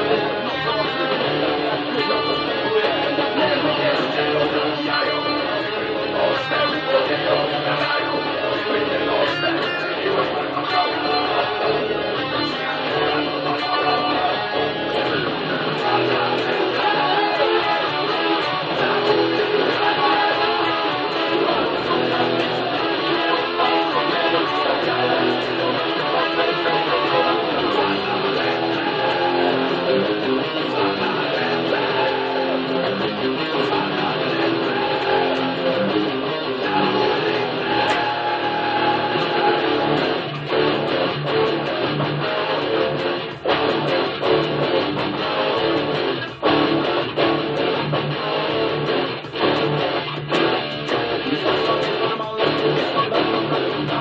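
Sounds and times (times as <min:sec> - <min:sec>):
electric guitar rock riff: 0:00.0 - 0:54.0
recorded band track with bass: 0:00.0 - 0:54.0.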